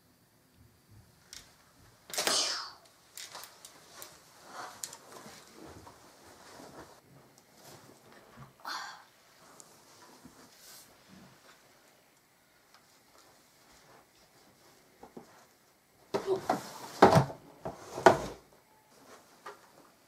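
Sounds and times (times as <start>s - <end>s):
scuffing and rustling movement: 3.3s - 8.6s.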